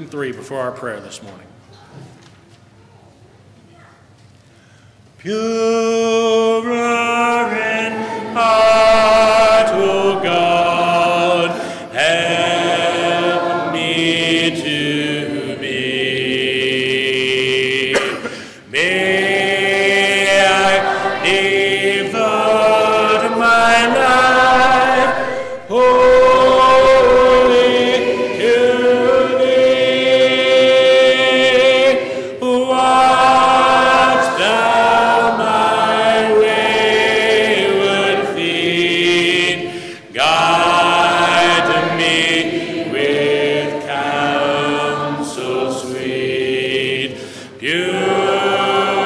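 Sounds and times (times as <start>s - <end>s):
congregation singing a hymn: 5.2s - 49.0s.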